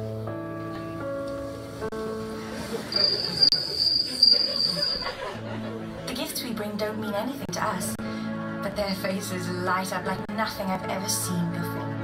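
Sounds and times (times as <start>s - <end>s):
cricket trilling over loudspeakers: 2.8s - 5.1s.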